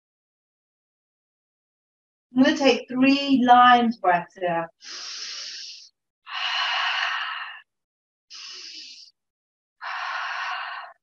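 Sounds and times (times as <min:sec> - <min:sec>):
person breathing deeply: 0:04.8 - 0:07.7, 0:08.3 - 0:09.2, 0:09.8 - 0:11.0.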